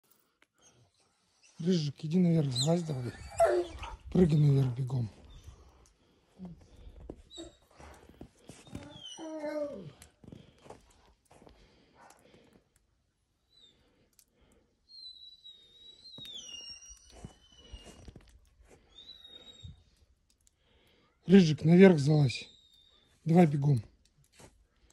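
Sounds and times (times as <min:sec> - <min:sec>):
whining animal call: 0:01.4 - 0:05.5, 0:08.6 - 0:10.0
high thin gliding whistles: 0:14.9 - 0:18.1.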